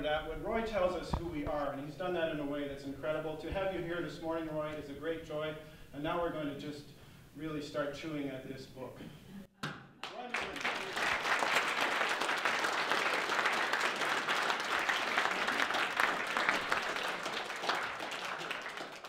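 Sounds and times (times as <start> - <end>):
audience applauding: 10.0 - 19.0.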